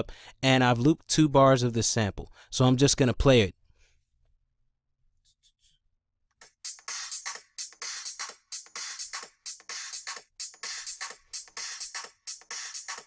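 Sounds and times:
looped drum break: 6.4 - 13.0.

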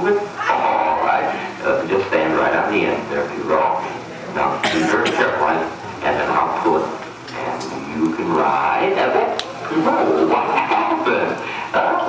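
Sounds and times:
voices speaking: 0.0 - 12.0.

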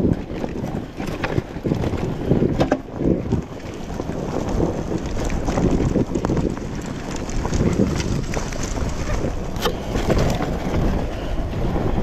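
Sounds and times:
dirt bike engine: 0.0 - 12.0
wind buffeting microphone: 0.0 - 12.0.

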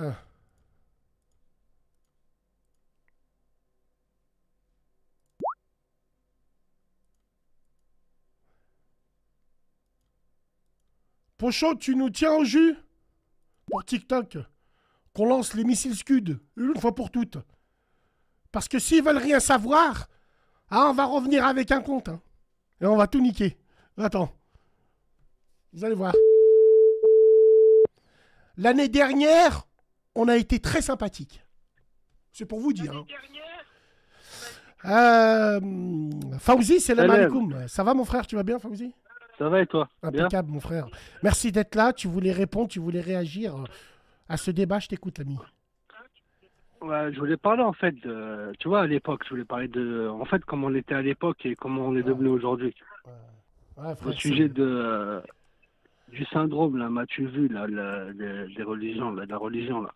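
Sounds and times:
telephone line beep: 26.2 - 27.9
man speaking: 32.4 - 33.4, 34.8 - 46.1, 46.8 - 55.3.

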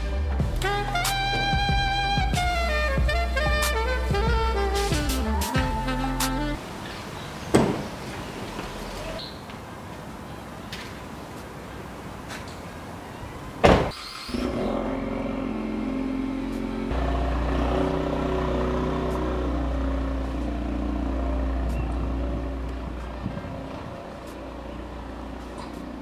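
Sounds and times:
car door slamming: 7.5 - 7.9, 13.6 - 14.0
car engine starting and running: 13.6 - 26.0.

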